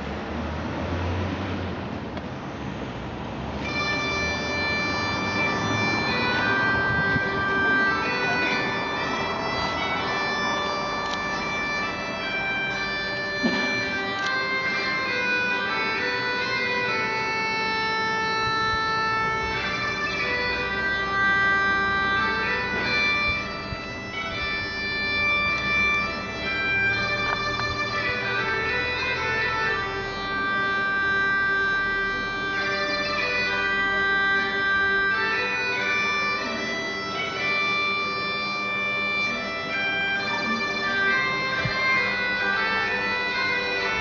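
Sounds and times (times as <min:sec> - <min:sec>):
bagpipes playing: 0:03.6 - 0:44.0.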